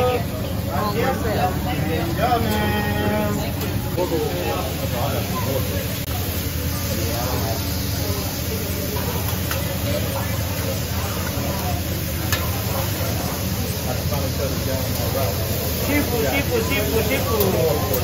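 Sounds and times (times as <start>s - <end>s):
background chatter: 0.0s - 18.0s
food sizzling on griddle: 0.9s - 18.0s.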